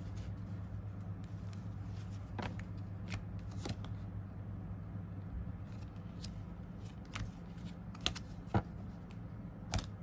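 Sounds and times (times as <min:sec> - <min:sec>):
cards shuffling and snapping: 0:00.0 - 0:04.0, 0:05.7 - 0:10.0.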